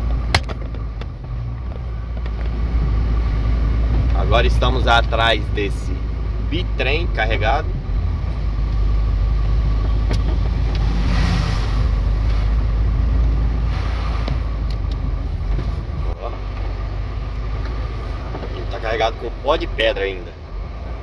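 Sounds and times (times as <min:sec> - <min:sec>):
road noise: 0:00.0 - 0:21.0
truck diesel engine pulling: 0:00.0 - 0:21.0
rushing noise: 0:02.6 - 0:19.8.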